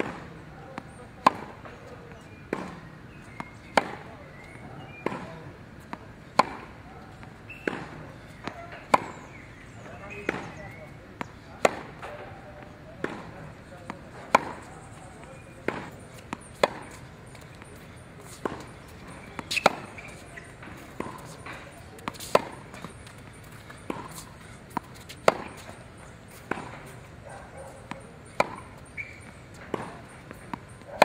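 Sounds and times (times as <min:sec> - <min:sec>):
faint ball impacts: 0:00.0 - 0:27.1, 0:27.8 - 0:31.0
racket hitting tennis ball: 0:00.0 - 0:31.0.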